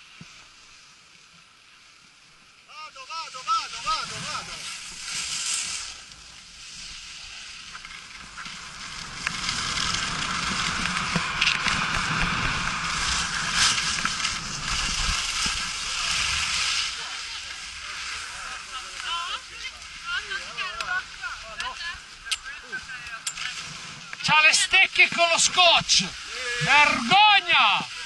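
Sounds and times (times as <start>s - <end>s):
skis scraping over packed snow: 0.0s - 28.0s
wind rushing over microphone: 8.1s - 17.0s.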